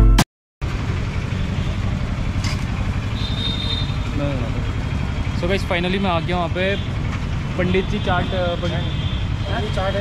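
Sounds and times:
engine idling: 0.6 - 10.0.

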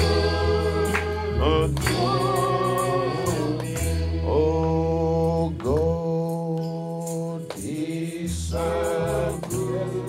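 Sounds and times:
man singing long held notes: 0.8 - 3.6, 4.2 - 10.0.

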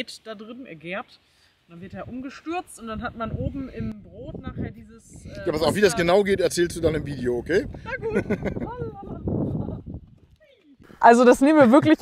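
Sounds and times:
person laughing breathily: 7.9 - 8.8.

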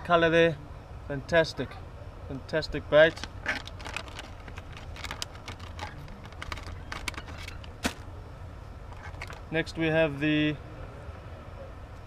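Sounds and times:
plastic packaging crinkling: 3.1 - 8.0, 8.9 - 9.5.

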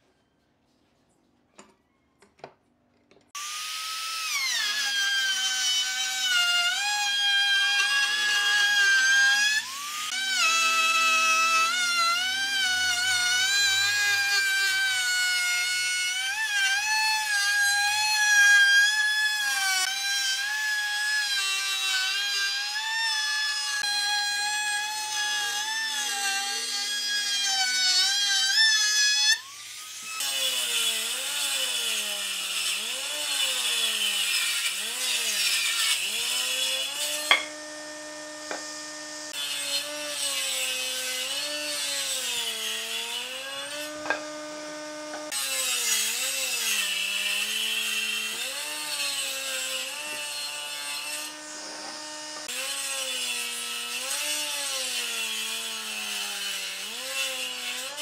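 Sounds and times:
router motor whining: 23.8 - 54.6
jointer-planer cutting: 32.6 - 53.1.

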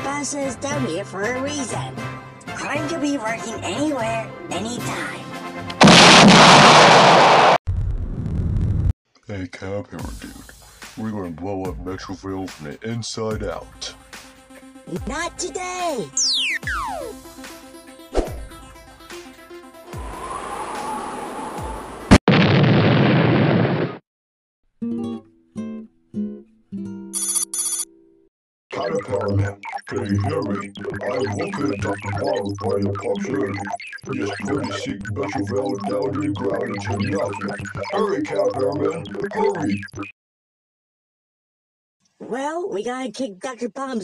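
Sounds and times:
cartoon explosion blast: 5.8 - 8.9, 22.1 - 24.0
smartwatch ringtone: 27.2 - 27.9.

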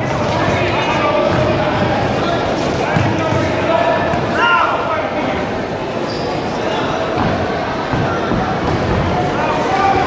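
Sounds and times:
voices of people echoing: 0.0 - 10.0.

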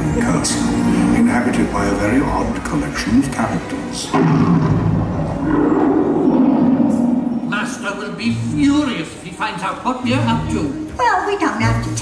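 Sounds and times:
deep sustained roar: 4.2 - 7.9.

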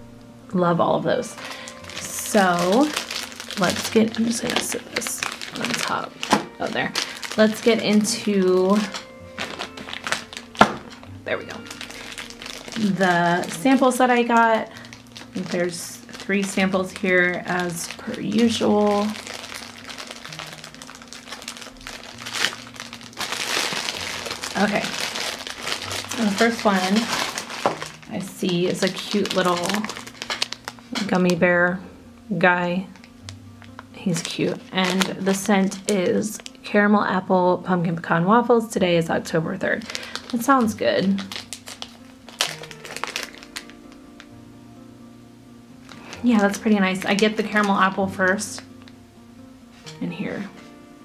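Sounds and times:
faint low shifting notes: 0.0 - 51.0
plastic wrapping crinkling: 1.1 - 31.5, 32.5 - 36.7, 39.6 - 44.3, 45.8 - 49.0
plastic rustling: 1.1 - 31.6, 32.8 - 36.6, 39.6 - 44.3, 45.8 - 48.9.

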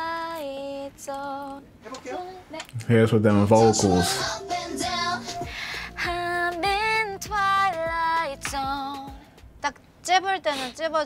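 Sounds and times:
woman singing: 0.0 - 2.7, 3.6 - 9.3.

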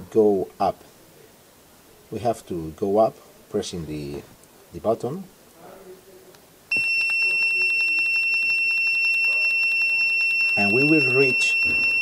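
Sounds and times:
continuous high-pitched electronic beep: 6.7 - 12.0.

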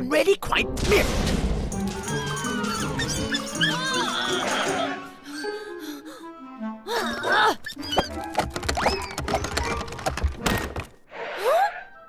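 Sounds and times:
cartoon background music: 0.4 - 12.0
cartoon mice squeaking: 2.2 - 4.9, 7.4 - 9.9.

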